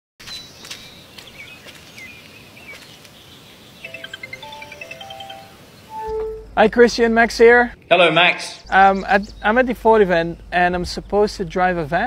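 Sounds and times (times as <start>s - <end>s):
birds chirping: 0.2s - 12.0s
phone ringing tone melody: 3.8s - 6.6s.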